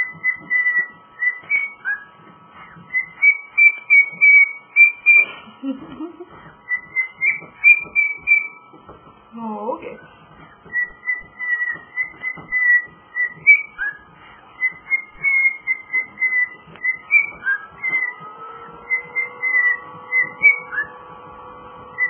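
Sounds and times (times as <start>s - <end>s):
cockatiel whistling: 0.0s - 5.4s, 6.6s - 8.6s, 10.0s - 21.1s.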